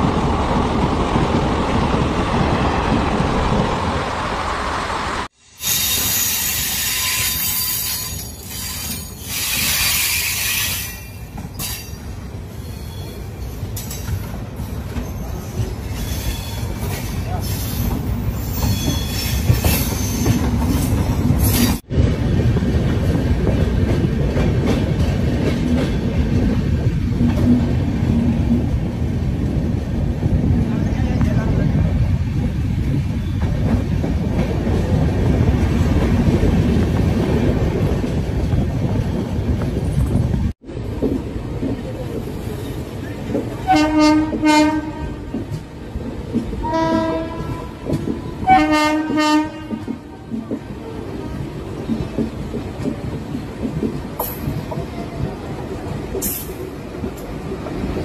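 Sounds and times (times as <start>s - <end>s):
train wheels rumbling on track: 0.0s - 58.0s
high wheel squeal: 5.6s - 12.0s, 15.0s - 21.8s
train horn blasts: 43.6s - 45.3s, 46.6s - 47.8s, 48.4s - 50.0s.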